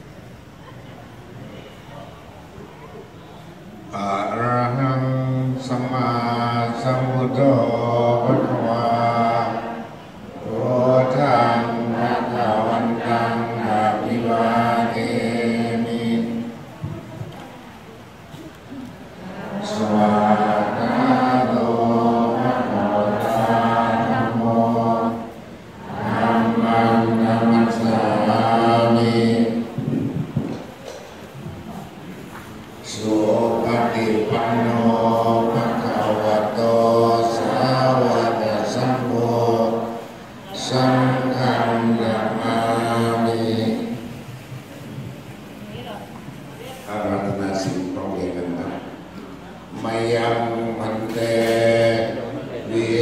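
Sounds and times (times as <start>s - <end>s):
voices chanting in unison: 3.9s - 16.6s, 19.1s - 30.2s, 32.8s - 44.3s, 49.7s - 53.0s.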